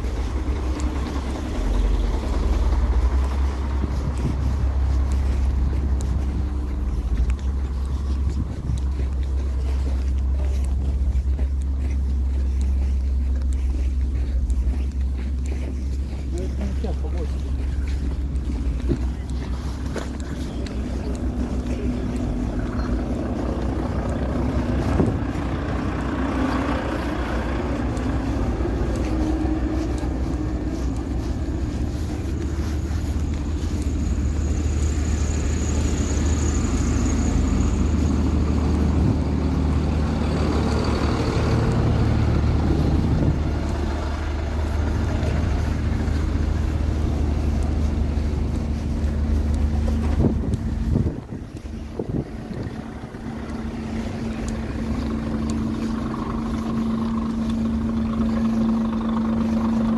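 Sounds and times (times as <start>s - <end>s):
truck and car engines idling: 0.0s - 59.9s.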